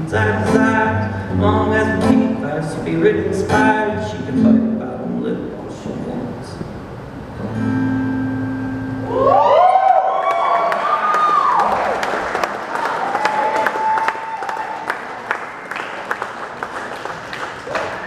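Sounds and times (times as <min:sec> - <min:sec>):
acoustic guitar chord: 0:00.0 - 0:05.6, 0:07.3 - 0:09.1
audience cheering and clapping: 0:09.1 - 0:18.0.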